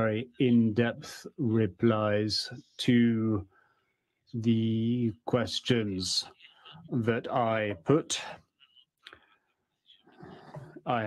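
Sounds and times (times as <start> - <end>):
man speaking into microphone: 0.0 - 3.4, 4.3 - 8.5.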